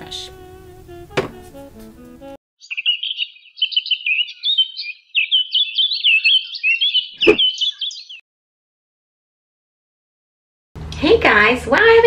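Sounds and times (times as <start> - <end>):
background music: 0.0 - 2.4
bird chirping: 2.6 - 8.2.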